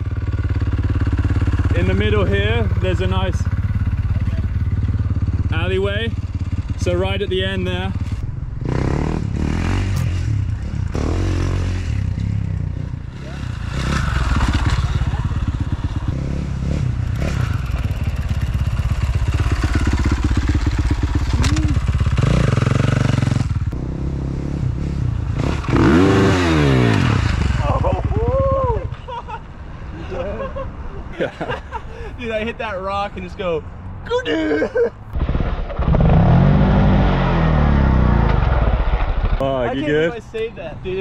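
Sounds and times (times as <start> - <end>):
dirt bike engine revving: 0.0 - 28.7, 35.2 - 39.0.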